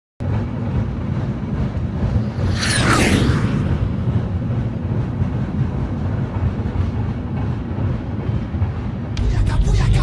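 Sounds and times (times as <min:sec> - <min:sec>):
vehicle rumble: 0:00.2 - 0:10.0.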